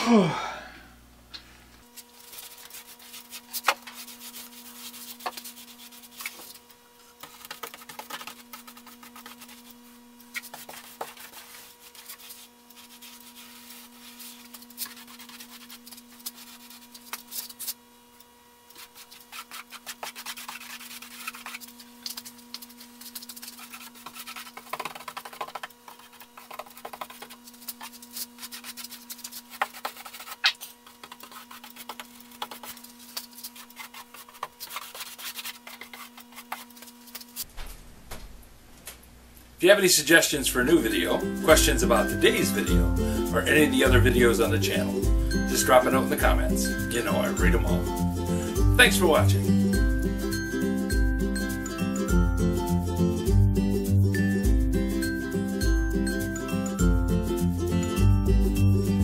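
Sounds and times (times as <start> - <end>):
faint steady hum: 0.0 - 54.0
stick scraping metal paint can: 18.8 - 37.5.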